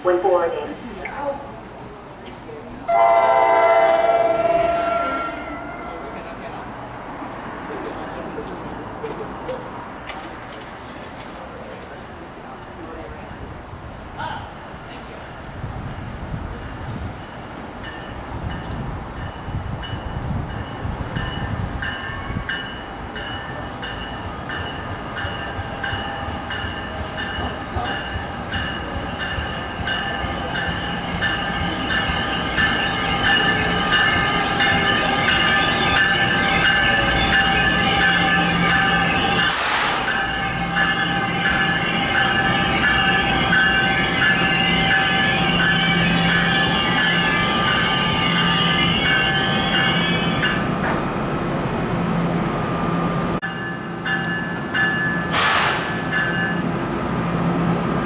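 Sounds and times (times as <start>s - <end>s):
train rumble: 0.0s - 58.0s
train wheels and brakes squealing: 3.6s - 6.4s, 16.6s - 51.0s, 53.4s - 56.7s
short hiss of train brakes: 39.5s - 40.2s, 46.6s - 48.4s, 55.3s - 56.2s.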